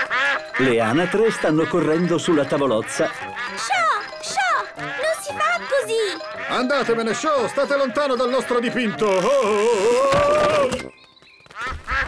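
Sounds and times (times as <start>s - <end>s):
cartoon ducks quacking: 0.0s - 9.1s.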